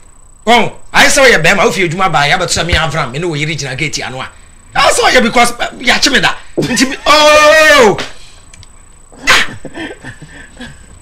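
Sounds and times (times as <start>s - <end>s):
faint chuckling: 9.2s - 11.0s
man laughing: 9.2s - 11.0s.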